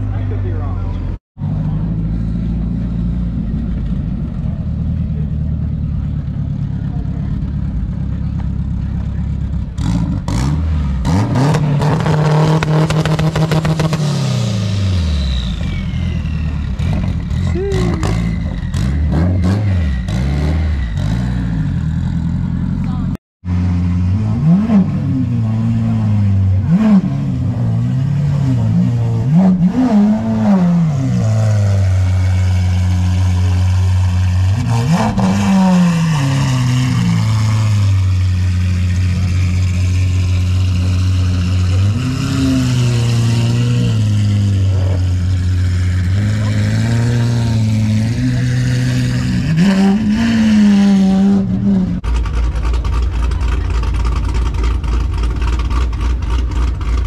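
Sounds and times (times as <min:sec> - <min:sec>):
car engine idling: 0:00.0 - 0:10.0, 0:36.4 - 0:42.0, 0:51.5 - 0:57.0
car engine revving: 0:00.0 - 0:57.0
sports car pulling out: 0:23.5 - 0:57.0.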